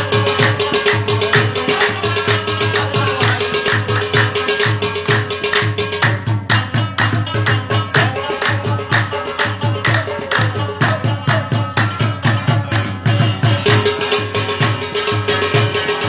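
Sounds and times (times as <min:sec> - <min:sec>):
hand-struck pot drum: 0:00.0 - 0:16.0.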